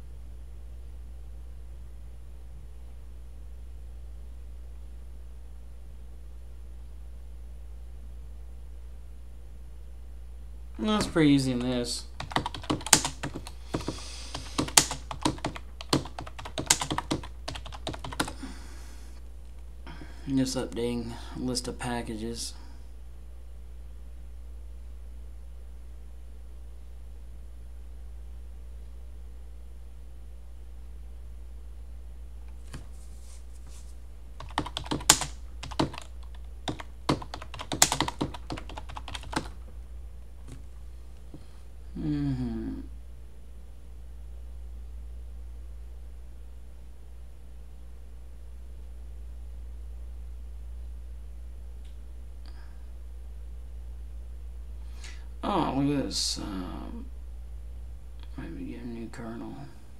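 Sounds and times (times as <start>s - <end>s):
keyboard typing: 10.9s - 18.4s, 34.4s - 39.6s.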